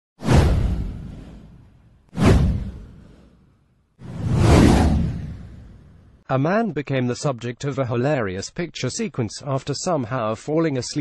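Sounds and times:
whoosh sound effects: 0.2s - 3.4s, 4.0s - 6.2s.

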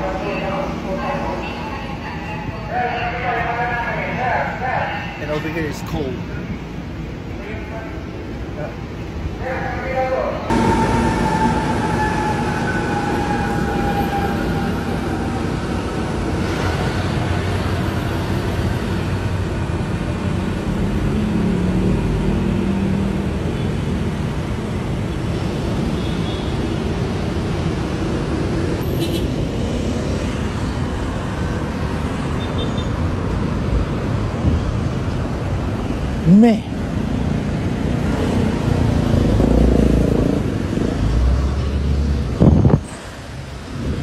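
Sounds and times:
trains rumbling: 0.0s - 32.4s
road traffic: 0.0s - 44.0s.

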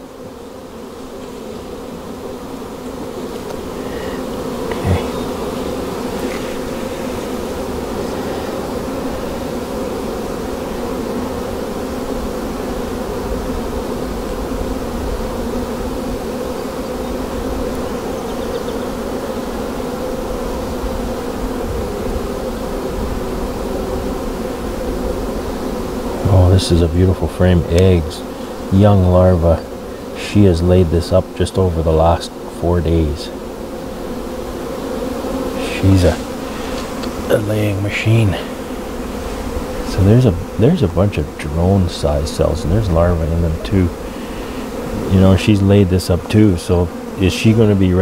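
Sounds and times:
bees buzzing: 0.0s - 48.0s.

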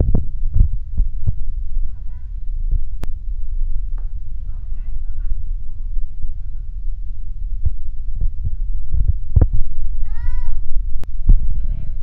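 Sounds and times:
handling rumble and knocks: 0.0s - 10.1s.

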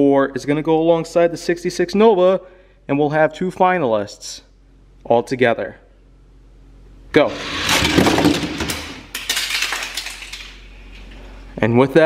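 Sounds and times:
toy cars rolling down plastic track: 7.3s - 10.6s.

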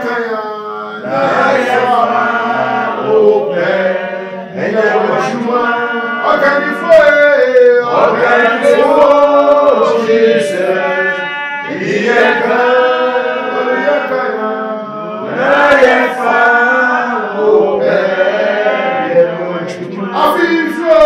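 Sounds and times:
man singing in chant-like style: 0.0s - 21.0s.

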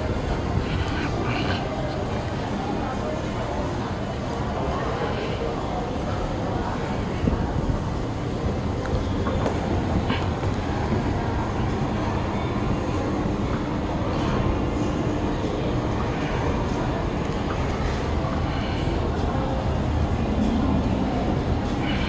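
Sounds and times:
faint background voices: 0.0s - 22.0s
indoor mall rumble and hum: 0.0s - 22.0s.

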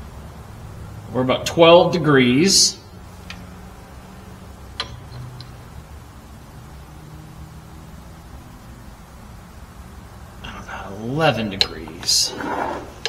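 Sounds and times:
faint low hum: 0.0s - 13.0s
light metallic clicks: 4.8s - 5.6s.

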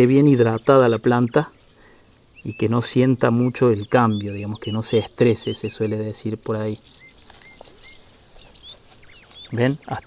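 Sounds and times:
faint outdoor noise: 0.0s - 10.0s
small birds chirping: 0.0s - 10.0s.

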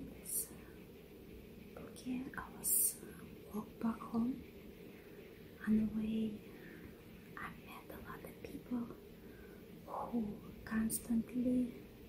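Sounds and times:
woman whispering: 0.0s - 0.8s, 1.8s - 4.5s, 5.6s - 6.5s, 7.4s - 9.0s, 9.8s - 11.9s.

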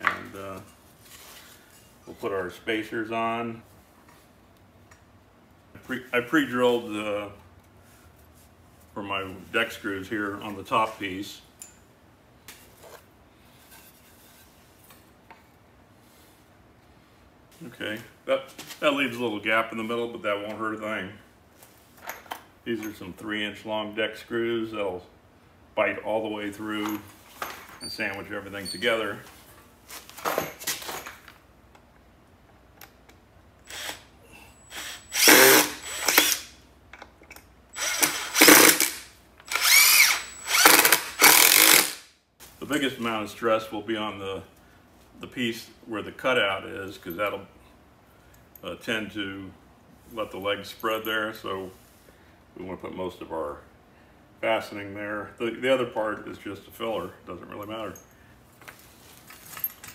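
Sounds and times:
impact driver driving screws: 34.7s - 36.5s, 37.8s - 42.0s.

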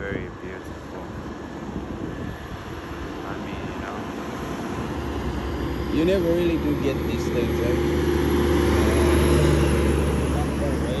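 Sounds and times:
truck diesel engine drone: 0.0s - 11.0s
tyre and road noise: 0.0s - 11.0s.

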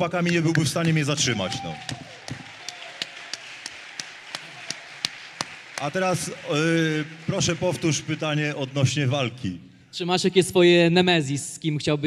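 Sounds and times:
murmur of large hall: 0.0s - 12.0s.

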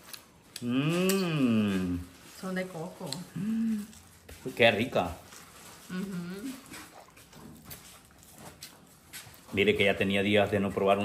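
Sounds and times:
man humming mmm: 0.6s - 2.1s, 3.3s - 3.9s
sucking and smacking while eating: 5.2s - 9.6s.

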